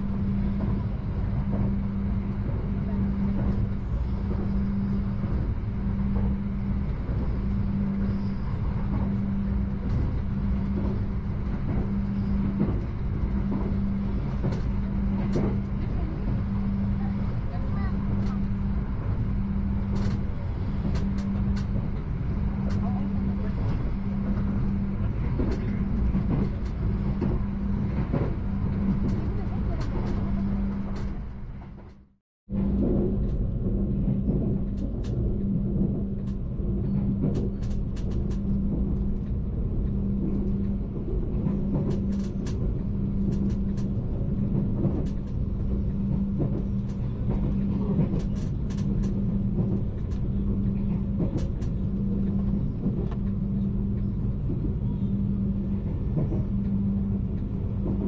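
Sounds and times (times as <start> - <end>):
pulsing hum: 0.0 - 58.0
train rumble: 0.0 - 58.0.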